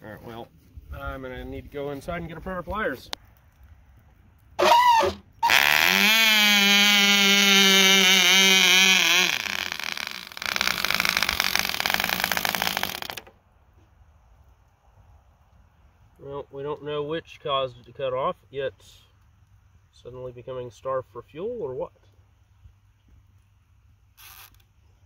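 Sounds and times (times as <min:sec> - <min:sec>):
small model engine running: 0:08.2 - 0:13.3.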